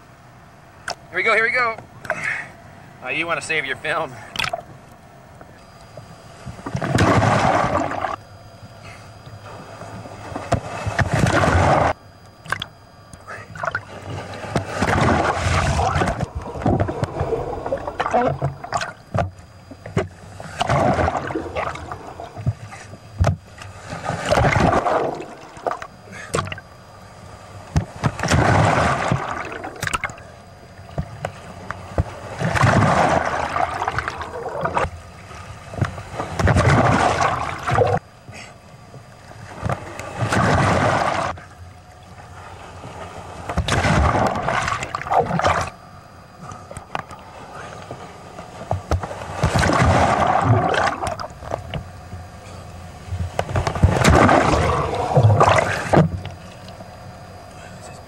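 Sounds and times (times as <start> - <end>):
seawater sloshing against camera: 13.4 - 26.7.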